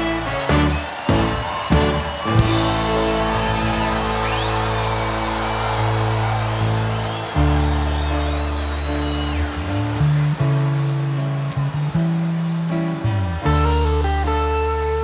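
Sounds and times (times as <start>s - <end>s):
live band playing: 0.0s - 15.0s.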